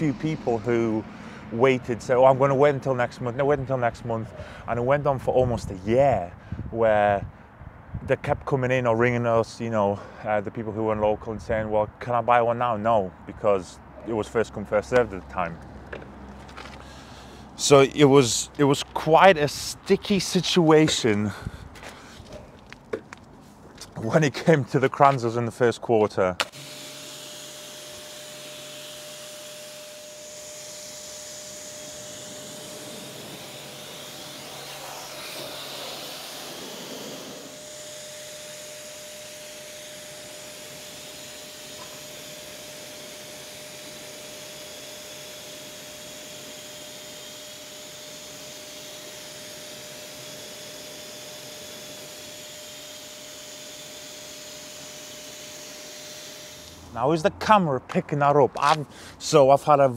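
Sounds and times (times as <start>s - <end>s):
pump whining: 0.0s - 4.7s, 26.4s - 57.2s
water jet hissing: 30.2s - 46.6s.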